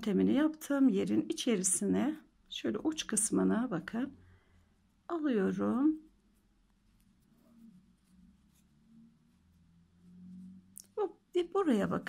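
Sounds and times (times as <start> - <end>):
low steady hum: 0.0 - 12.0
yarn rustling through fabric: 0.0 - 12.0.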